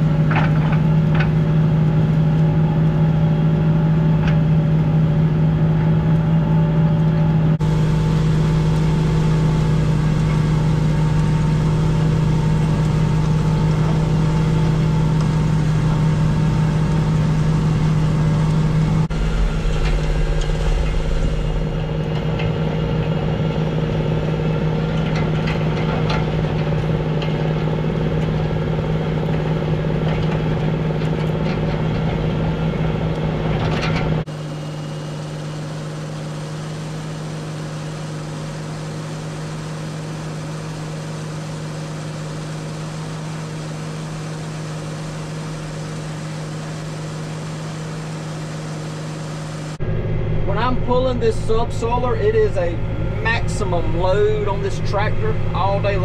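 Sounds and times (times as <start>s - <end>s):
tractor diesel engine under load: 0.0s - 56.0s.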